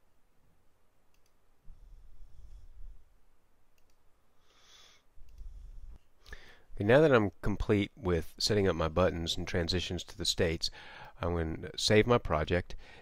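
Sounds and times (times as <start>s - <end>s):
soft hiss: 0.0s - 13.0s
computer mouse clicks: 1.1s - 1.4s, 3.7s - 4.0s.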